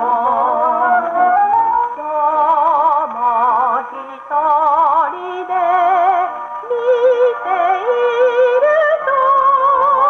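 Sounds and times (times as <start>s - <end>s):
small orchestra: 0.0s - 10.0s
woman singing with vibrato: 0.0s - 10.0s.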